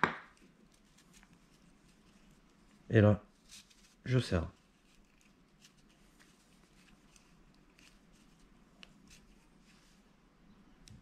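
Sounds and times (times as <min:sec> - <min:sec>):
cord rustling and clicking: 0:04.6 - 0:10.0.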